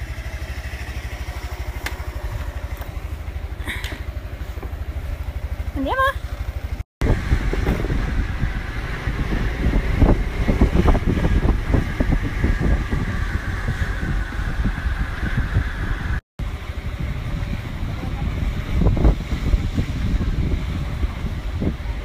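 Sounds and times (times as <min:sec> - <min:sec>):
motorbike engine running: 0:00.0 - 0:22.0
wind buffeting microphone: 0:07.0 - 0:22.0.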